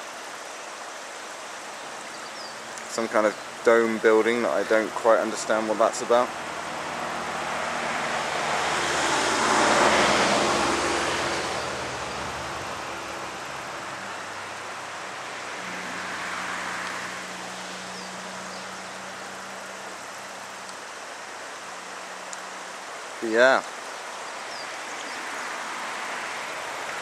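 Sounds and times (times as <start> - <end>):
vehicle passing: 3.0 - 23.5, 24.1 - 27.0.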